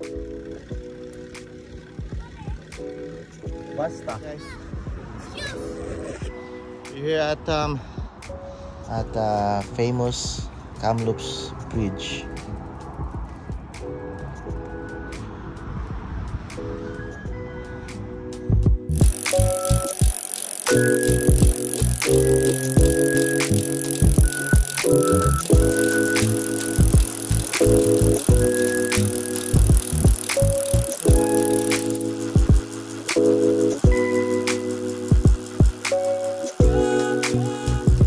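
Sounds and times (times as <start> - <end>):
background music with beat and bass: 0.0 - 5.2, 12.2 - 19.9, 20.7 - 38.0.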